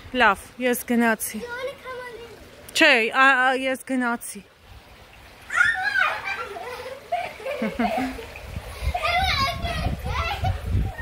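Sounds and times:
children playing: 0:01.4 - 0:02.6, 0:05.4 - 0:11.0
child calling out: 0:05.5 - 0:06.5.

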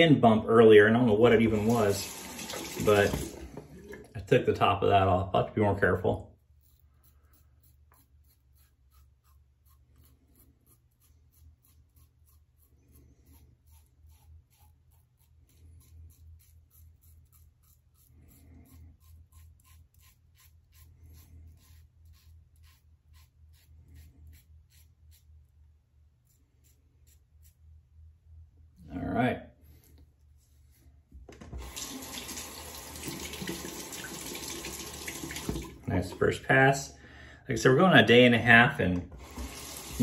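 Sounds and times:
razor scraping stubble: 0:05.7 - 0:27.8.

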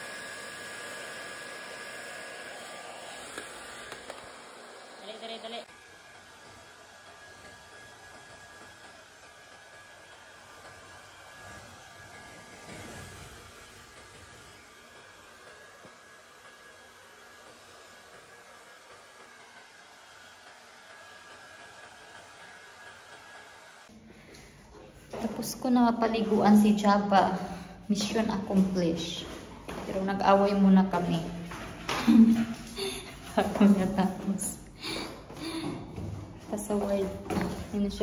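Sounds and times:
blow dryer whirring: 0:00.0 - 0:24.0.

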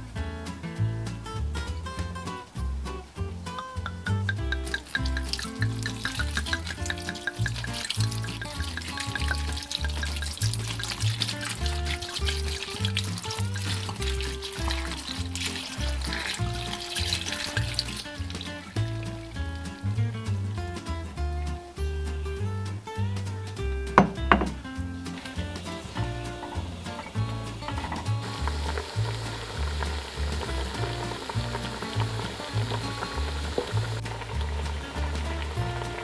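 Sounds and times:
background music with bass line: 0:00.0 - 0:36.0
wine pouring and splashing: 0:03.8 - 0:20.7, 0:24.0 - 0:36.0.

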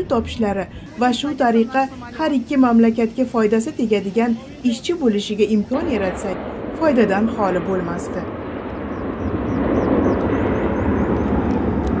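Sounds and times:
jet engines at takeoff power: 0:04.4 - 0:12.0.

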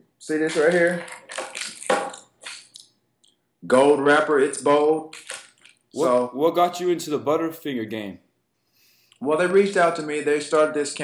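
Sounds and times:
plastic wrapper crinkling: 0:00.5 - 0:02.9, 0:05.1 - 0:06.0.

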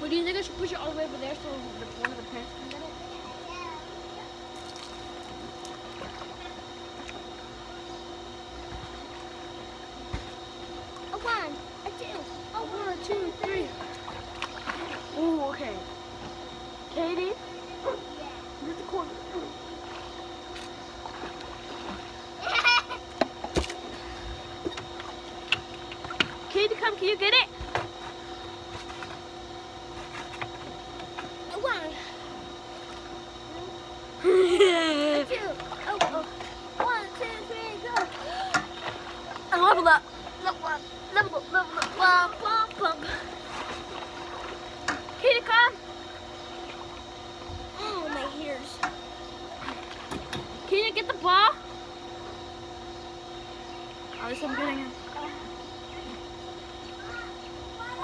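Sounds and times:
steady hum: 0:00.0 - 0:58.0
water splashing in pool: 0:04.5 - 0:07.2, 0:13.7 - 0:15.4, 0:38.0 - 0:40.5, 0:41.2 - 0:45.2.

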